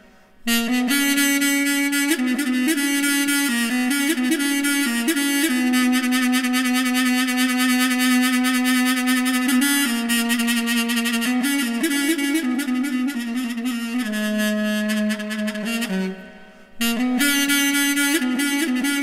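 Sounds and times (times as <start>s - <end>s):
double-reed woodwind melody: 0.4s - 19.0s.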